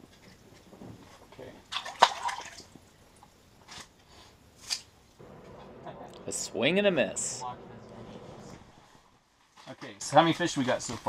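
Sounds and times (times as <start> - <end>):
small water sounds: 0.0 - 4.0
fish splashing into water: 1.7 - 2.7.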